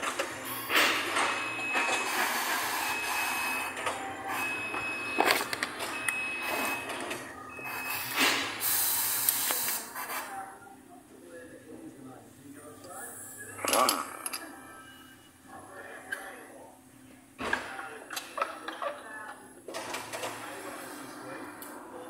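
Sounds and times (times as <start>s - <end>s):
compressed air hiss: 8.2s - 10.2s.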